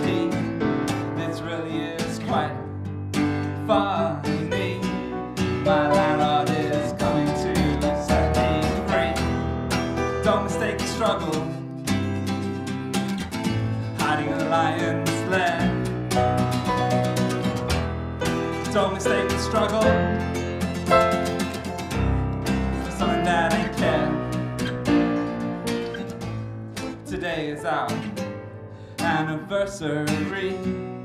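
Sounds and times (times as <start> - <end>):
person singing: 0.0 - 2.8, 3.4 - 11.7, 14.0 - 15.9, 18.5 - 21.3, 22.7 - 24.8, 26.8 - 28.2, 28.9 - 31.0
acoustic guitar strumming: 0.0 - 31.0
electric keyboard: 15.8 - 26.8.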